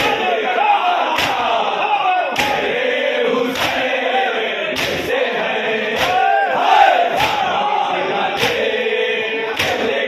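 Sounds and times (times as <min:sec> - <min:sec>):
crowd of men chanting: 0:00.0 - 0:10.0
chest-beating strikes in unison: 0:07.1 - 0:07.5.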